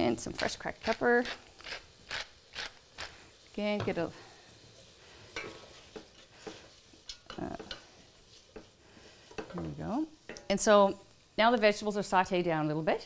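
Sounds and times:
vegetables sizzling: 0:00.0 - 0:13.0
spoon scraping and clicking on pot: 0:05.4 - 0:08.7.

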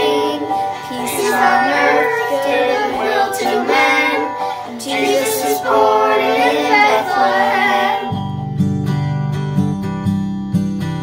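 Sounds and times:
children singing: 0:00.0 - 0:08.2.

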